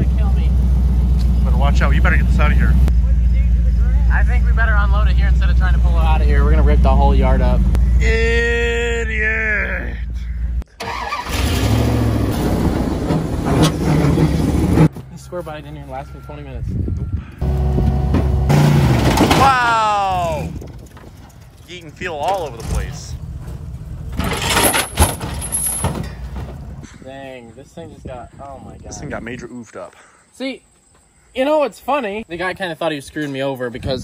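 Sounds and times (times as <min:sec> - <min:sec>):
heavy thud of truck dropping: 0:17.8 - 0:19.9, 0:24.1 - 0:26.8
pickup truck engine running: 0:20.1 - 0:26.8.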